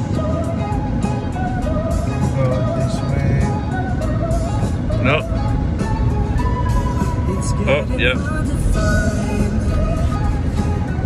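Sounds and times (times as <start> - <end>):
car road rumble: 0.0 - 11.0
song playing on car stereo: 0.0 - 11.0.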